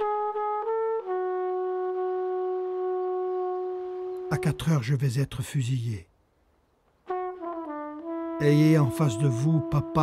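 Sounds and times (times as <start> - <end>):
brass horn playing slow melody: 0.0 - 4.5, 7.0 - 10.0.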